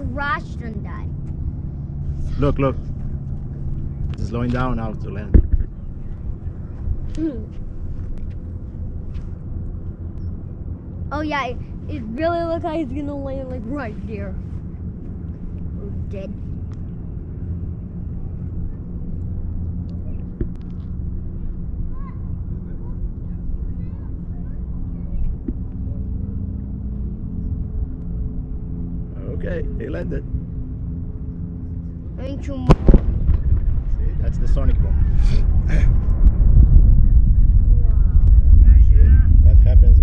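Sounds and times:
low mechanical hum: 0.0 - 40.0
low rumble: 0.0 - 40.0
person laughing: 35.2 - 36.0.

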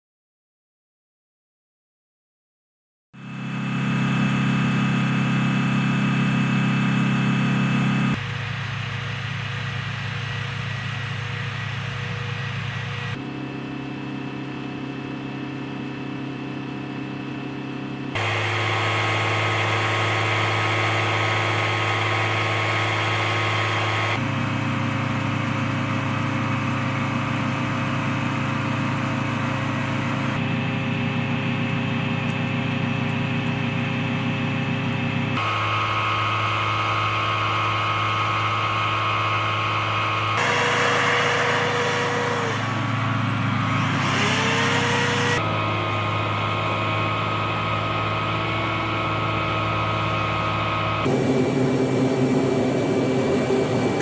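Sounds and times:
turbine engine whining hum: 3.2 - 54.0.

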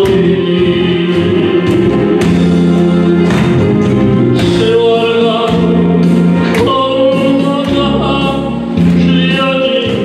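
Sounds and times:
man singing into a microphone: 0.0 - 2.4, 4.4 - 10.0
pop backing track with beat: 0.0 - 10.0.

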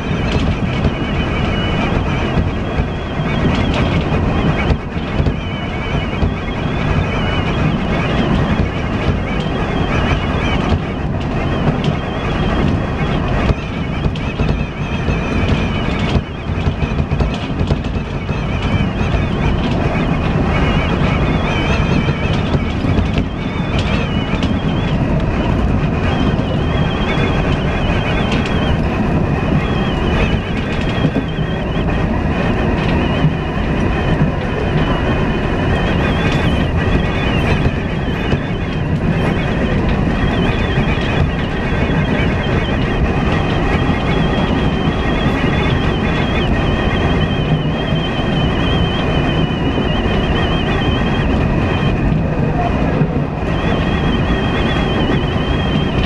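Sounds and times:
wheels rumbling on rail: 0.0 - 56.0.

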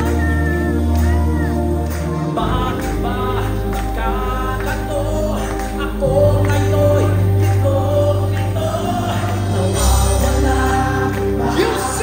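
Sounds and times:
live band playing slow music: 0.0 - 12.0
steady low bass: 0.0 - 12.0.

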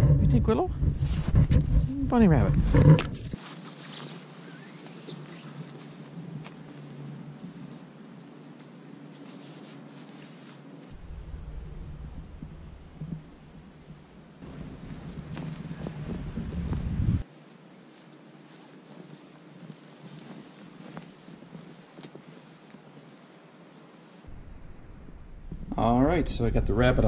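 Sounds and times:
wind noise on microphone: 0.0 - 3.4, 10.9 - 17.2, 24.3 - 27.0
rustling: 0.8 - 26.2.

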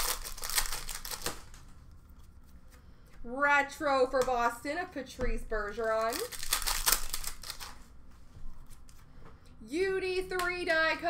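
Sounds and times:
card packs crinkling and rustling: 0.0 - 1.7, 5.6 - 7.9.

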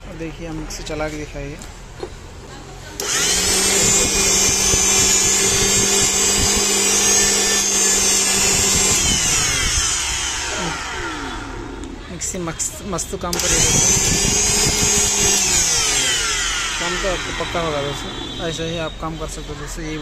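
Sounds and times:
mixer grinder motor whine: 3.0 - 20.0.

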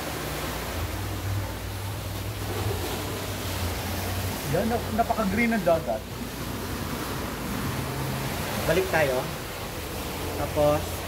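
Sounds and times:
sea surf on rocks: 0.0 - 11.0.

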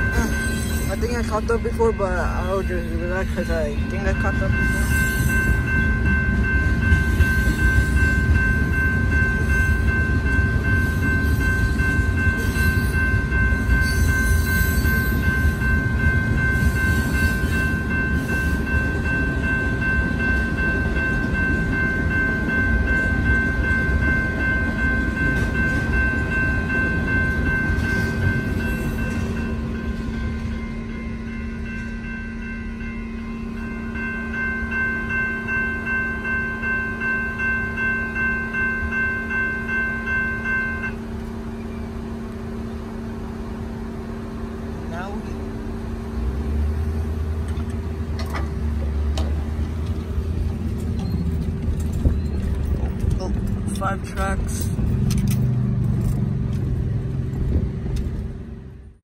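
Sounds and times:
crossing bell ringing: 0.0 - 59.0
train rumbling on tracks: 0.0 - 59.0.

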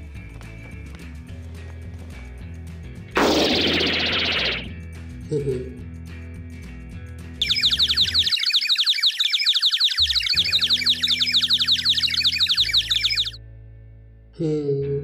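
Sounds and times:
cartoon bird tweets and chirps: 3.2 - 4.7, 7.4 - 13.4.

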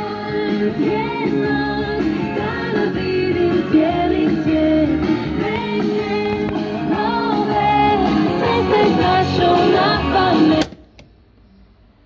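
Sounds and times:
guitar music from radio loudspeaker: 0.0 - 10.7.

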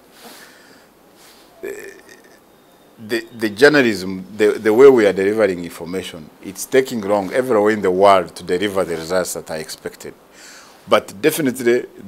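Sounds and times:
man saying uh: 1.6 - 2.3, 3.0 - 10.1, 10.9 - 12.0.

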